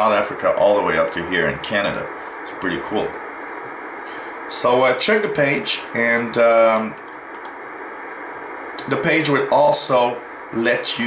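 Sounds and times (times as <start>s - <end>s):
radio receiver hiss: 0.0s - 11.0s.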